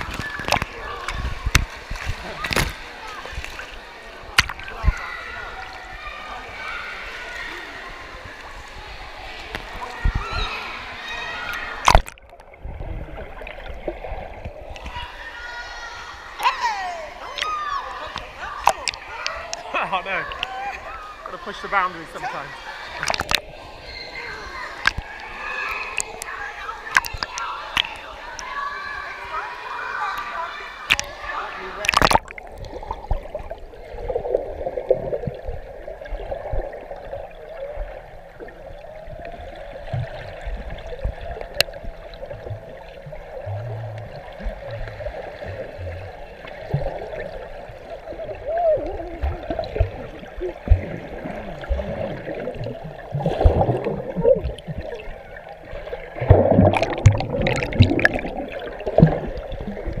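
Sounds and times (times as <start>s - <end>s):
water splashing: 0.0s - 60.0s
muffled underwater bubbling: 31.8s - 60.0s.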